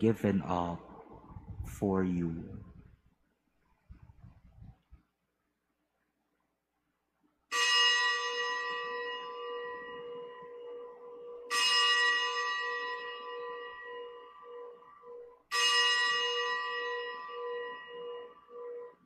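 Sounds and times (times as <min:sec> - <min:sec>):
bell ringing: 0:07.5 - 0:19.0.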